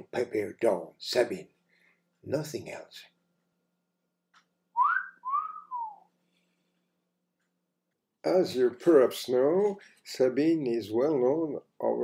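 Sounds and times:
man whistling: 0:04.8 - 0:06.1.

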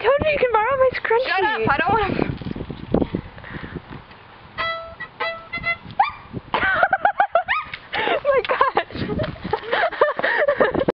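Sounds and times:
bowed violin notes: 0:04.6 - 0:06.0
high wavering vocal calls: 0:04.6 - 0:06.4.

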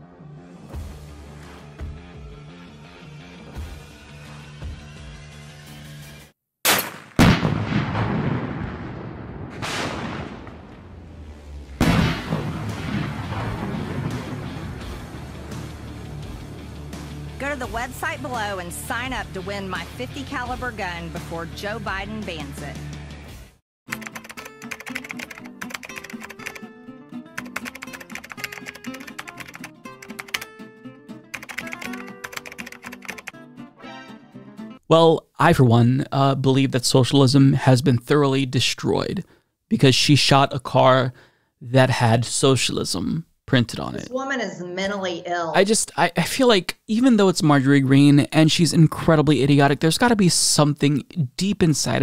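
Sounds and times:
background music: 0:00.0 - 0:06.3, 0:11.8 - 0:34.9
rifle shot: 0:06.6 - 0:14.4
car explosion blasts: 0:06.7 - 0:15.2
rapid typing on keyboard: 0:23.9 - 0:26.6, 0:27.4 - 0:30.5, 0:31.3 - 0:33.4.

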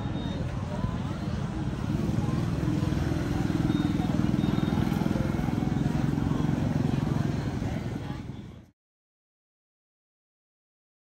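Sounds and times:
people's voices: 0:00.0 - 0:08.7
motorbike engine running: 0:01.8 - 0:08.5.

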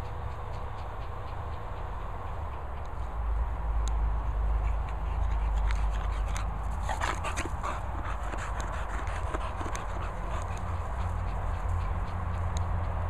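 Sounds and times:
dog vocalizing: 0:05.0 - 0:13.0.

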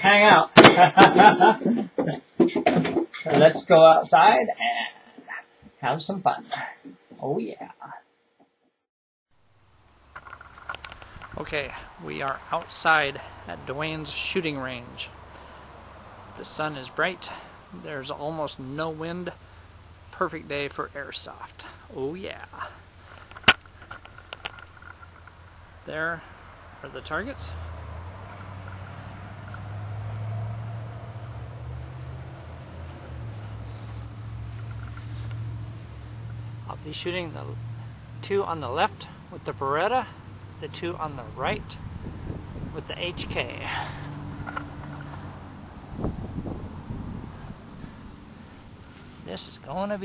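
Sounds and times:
wind rumble on microphone: 0:41.5 - 0:43.6, 0:45.2 - 0:48.1.

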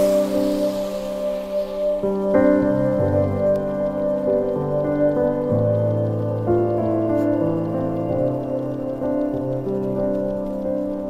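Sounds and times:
sustained chords background music: 0:00.0 - 0:11.0.

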